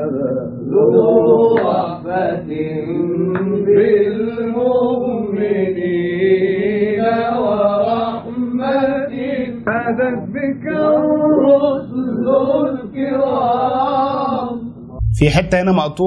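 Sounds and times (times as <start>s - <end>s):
man singing devotional chant: 0.0s - 16.0s.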